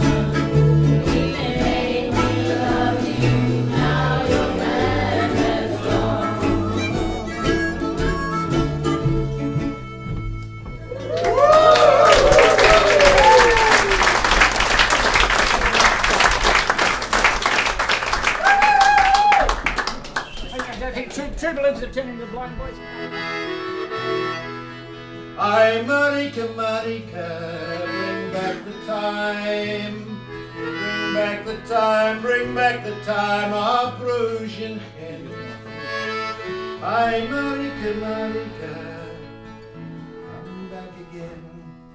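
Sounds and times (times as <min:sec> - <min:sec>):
melodica melody: 0:00.0 - 0:10.9, 0:21.6 - 0:25.8, 0:27.2 - 0:33.9, 0:35.0 - 0:40.6
acoustic guitar: 0:00.0 - 0:11.3, 0:19.9 - 0:41.9
audience applauding: 0:11.0 - 0:21.1.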